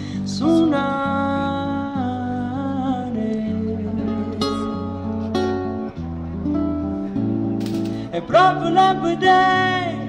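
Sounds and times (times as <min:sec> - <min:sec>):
amplified guitar picking: 0:00.0 - 0:10.0.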